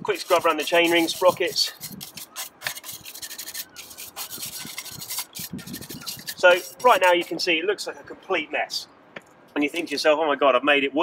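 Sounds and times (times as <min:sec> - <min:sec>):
stiff brush scrubbing metal teeth: 0:00.0 - 0:07.4.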